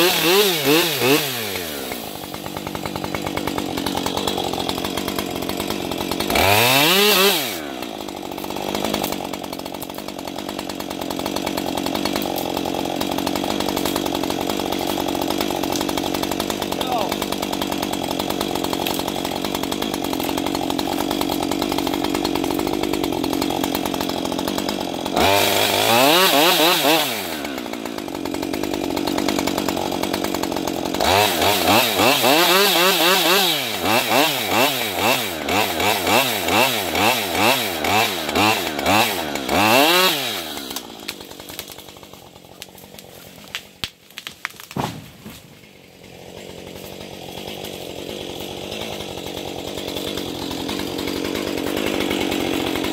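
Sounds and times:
chainsaw cutting through tree trunk: 0:00.0 - 0:52.9
tree cracking: 0:00.2 - 0:34.7, 0:36.5 - 0:52.9.

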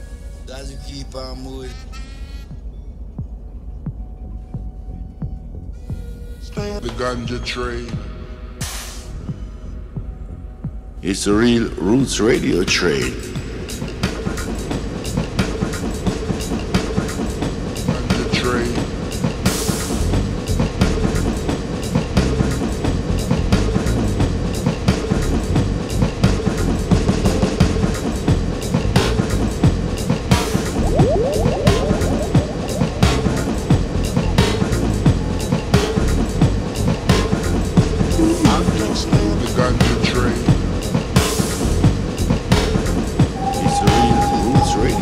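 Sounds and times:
train clickety-clack over rails: 0:13.6 - 0:29.0
steady drone and bass: 0:30.6 - 0:35.4.

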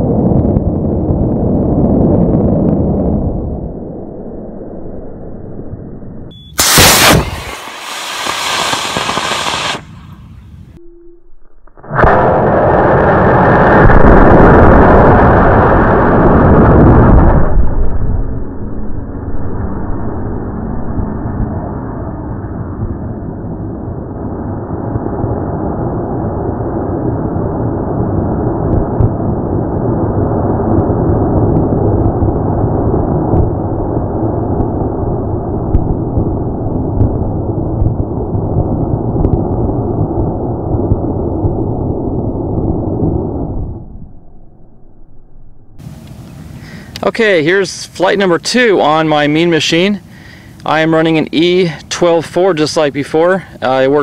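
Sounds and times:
low rushing noise on microphone: 0:00.0 - 0:10.8, 0:11.8 - 0:54.0
rocket motor roaring: 0:01.0 - 0:10.7, 0:11.7 - 0:49.9.

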